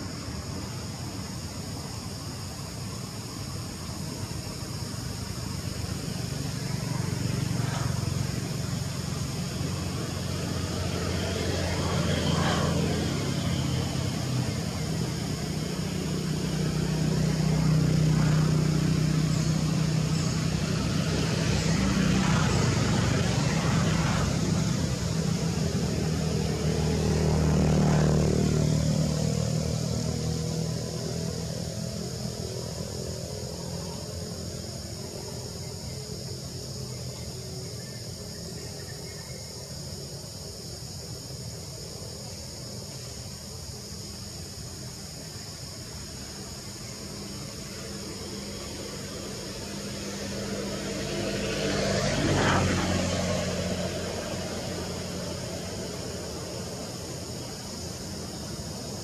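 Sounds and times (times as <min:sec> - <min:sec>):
passing vehicle engines: 0:00.0 - 0:59.0.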